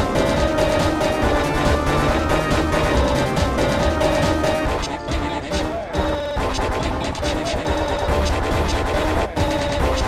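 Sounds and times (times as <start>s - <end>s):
layered remix music with beat: 0.0s - 10.0s.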